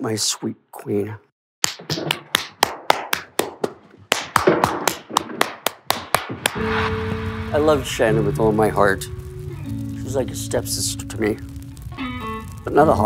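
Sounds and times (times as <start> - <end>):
person clapping slowly: 1.6 - 6.6
guitar playing: 6.6 - 13.0.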